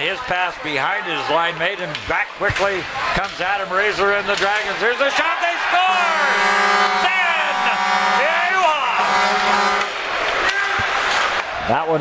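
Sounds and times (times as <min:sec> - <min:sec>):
crowd cheering: 0:00.0 - 0:12.0
goal horn low tone: 0:05.2 - 0:10.1.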